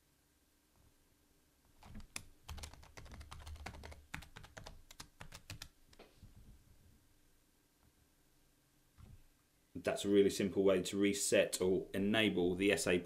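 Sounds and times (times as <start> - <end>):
faint keyboard typing: 1.7 - 6.1.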